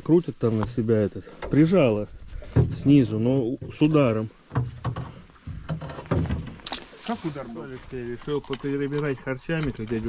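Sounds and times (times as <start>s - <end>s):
knocks and rustling in a boat: 0.5s - 10.0s.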